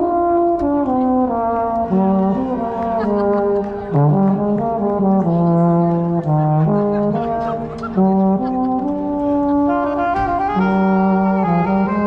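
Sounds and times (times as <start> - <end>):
marching band brass chords: 0.0 - 12.0.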